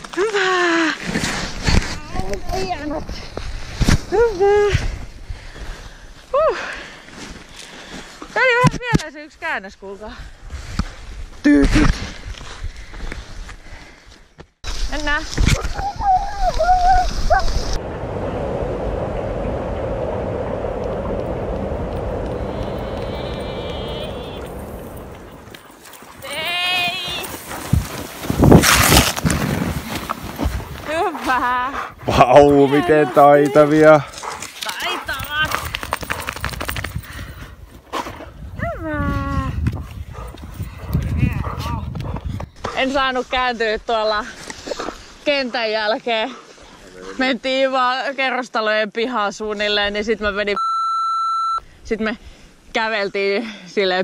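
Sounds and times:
skier and dogs moving on snow: 14.6 - 47.3
rustling and handling noise: 24.5 - 31.5.

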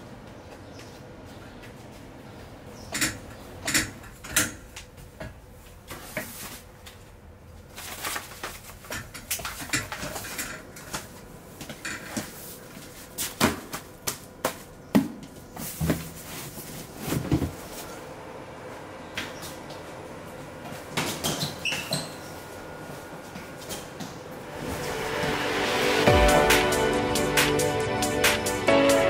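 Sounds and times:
knocks and clicks on metal shelving: 2.9 - 5.4
paper rustling: 7.7 - 10.2.

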